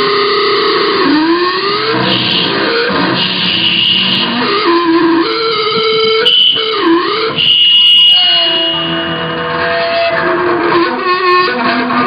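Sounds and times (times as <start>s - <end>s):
shrill feedback tone: 0.0s - 11.5s
sustained distorted electric guitar: 0.0s - 12.0s.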